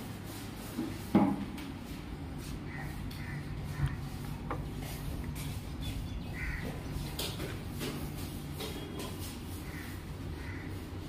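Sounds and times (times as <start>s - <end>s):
steady low hum: 0.0s - 11.0s
birds calling: 2.2s - 11.0s.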